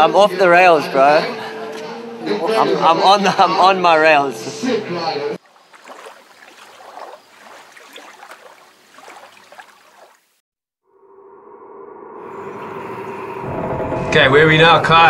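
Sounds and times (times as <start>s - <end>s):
sustained soundtrack tone: 10.9s - 15.0s.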